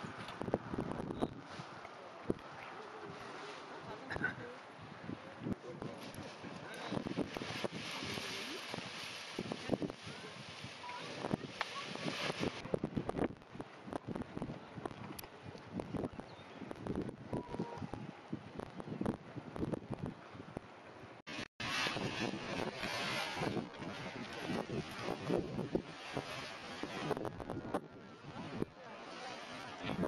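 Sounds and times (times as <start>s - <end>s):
gusty wind on microphone: 0.0s - 30.0s.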